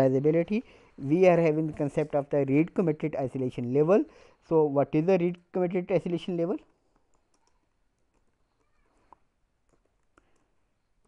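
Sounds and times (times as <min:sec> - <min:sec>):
typing on computer keyboard: 0:06.9 - 0:08.8.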